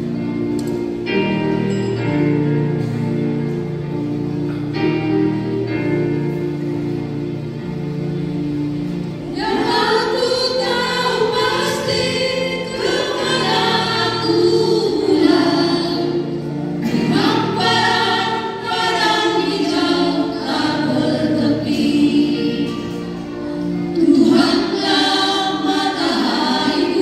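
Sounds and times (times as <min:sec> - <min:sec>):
instrumental accompaniment: 0:00.0 - 0:27.0
women singing a church song: 0:09.2 - 0:27.0.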